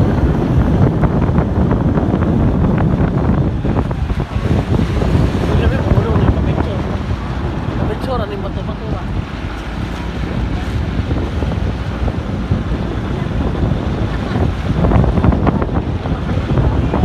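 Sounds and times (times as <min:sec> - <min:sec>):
wind noise on microphone: 0:00.0 - 0:17.0.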